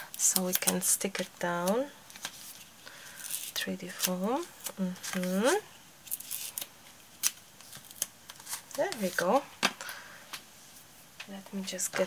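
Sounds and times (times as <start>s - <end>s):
foam tape pulled and torn: 3.2s - 8.6s.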